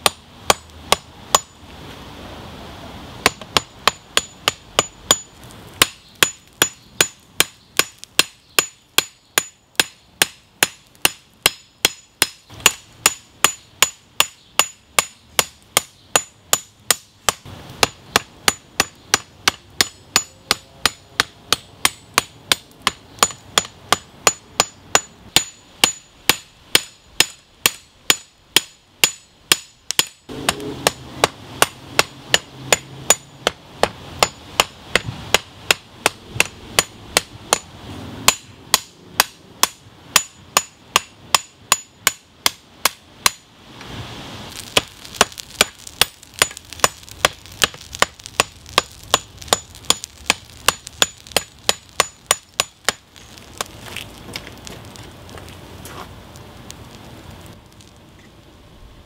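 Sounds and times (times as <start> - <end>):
hammer striking steel on anvil: 3.2 - 37.7, 38.3 - 43.5.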